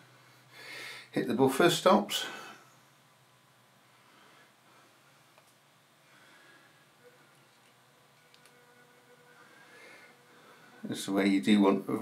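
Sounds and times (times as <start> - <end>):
small electric motor whine: 7.0 - 10.9.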